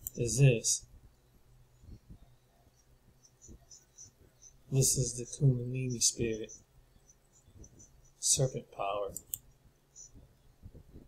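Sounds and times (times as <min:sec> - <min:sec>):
computer mouse clicks: 0:09.1 - 0:10.2.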